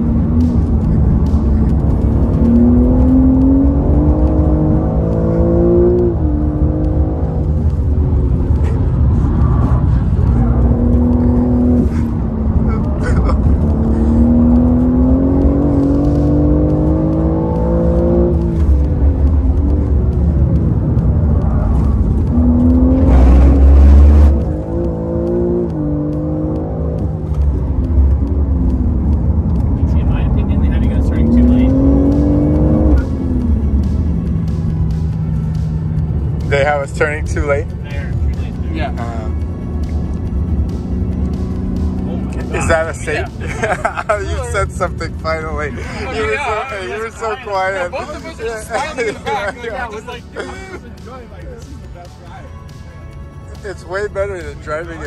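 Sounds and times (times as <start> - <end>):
car engine accelerating: 0.0 - 55.0
road and tyre noise: 0.0 - 55.0.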